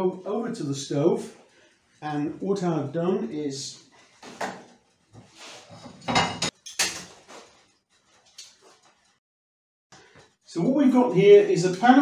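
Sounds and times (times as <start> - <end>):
metal pans clanking on hob: 5.7 - 7.4.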